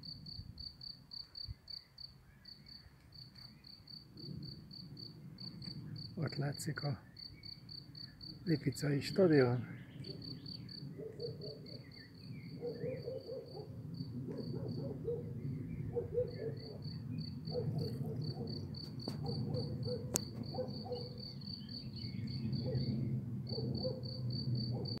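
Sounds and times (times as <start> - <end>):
cricket chirping: 0.0 - 25.0.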